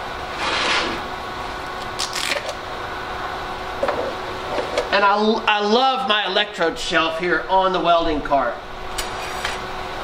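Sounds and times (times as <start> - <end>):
welder fan hum: 0.0 - 10.0.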